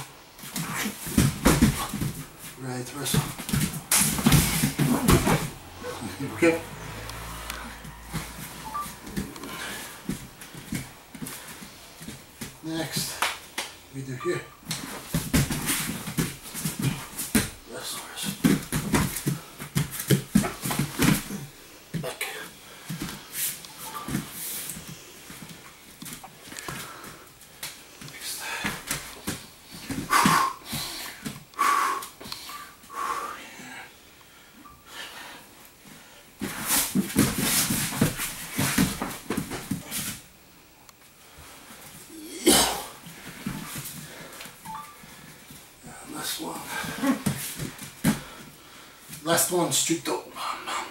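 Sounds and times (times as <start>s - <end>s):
scuffling and thudding on a foam mat: 0.4s - 6.6s, 14.7s - 17.6s, 18.2s - 22.1s, 36.4s - 40.3s
heavy panting breaths: 9.2s - 12.1s, 26.4s - 36.9s.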